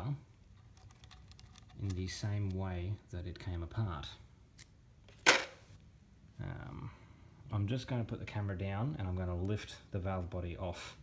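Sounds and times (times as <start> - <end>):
metal clink: 5.2 - 5.6.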